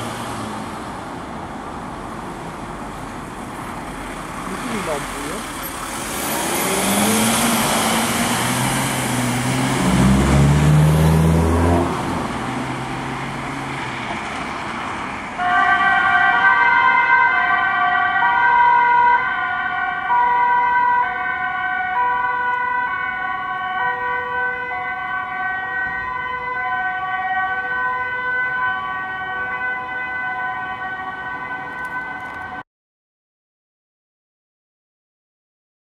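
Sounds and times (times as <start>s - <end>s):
ambulance engine and tyres: 0.0s - 32.6s
two-tone siren: 15.4s - 32.6s.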